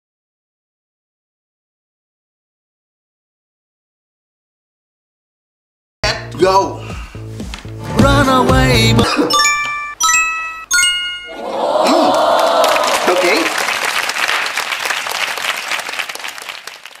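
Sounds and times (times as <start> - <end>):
bright chime notes: 9.0 - 12.0
applause and cheering: 11.3 - 17.0.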